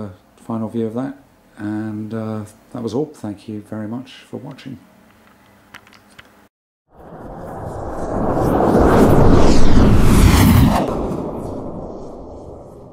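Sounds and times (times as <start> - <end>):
rumbling whoosh: 6.9 - 12.9.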